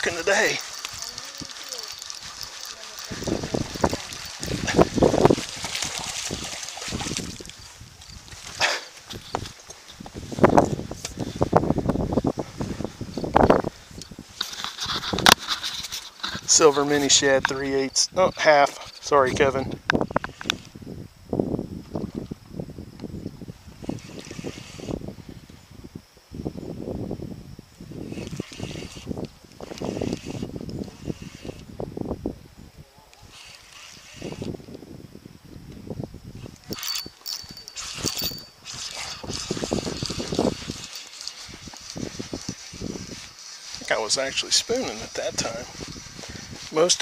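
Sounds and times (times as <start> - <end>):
clothing brushing microphone: 0.0 - 8.5, 14.3 - 17.4, 23.8 - 25.1, 28.0 - 31.6, 33.2 - 34.6, 36.4 - 47.0
fishing rod and reel handled: 0.0 - 11.3, 13.0 - 20.8, 28.1 - 31.8, 33.1 - 34.8, 36.4 - 47.0.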